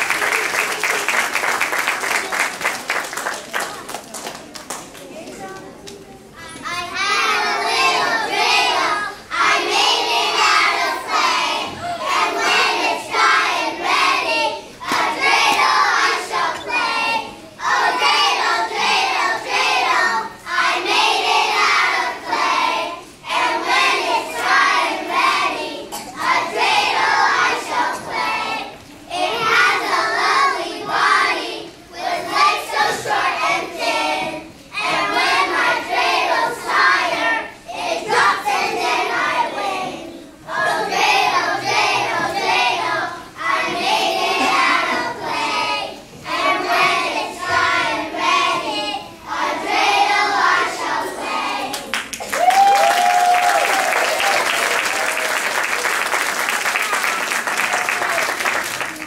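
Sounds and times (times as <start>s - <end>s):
children's choir singing: 0.0s - 4.4s, 5.2s - 52.2s.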